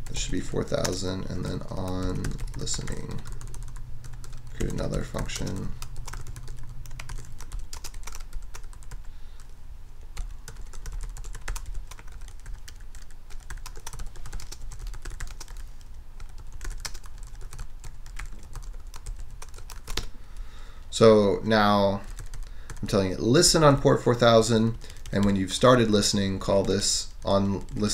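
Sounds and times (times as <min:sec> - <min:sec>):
steady low hum: 0:00.0 - 0:27.9
typing on computer keyboard: 0:01.6 - 0:09.0, 0:10.2 - 0:15.6, 0:16.2 - 0:20.1, 0:22.1 - 0:22.9.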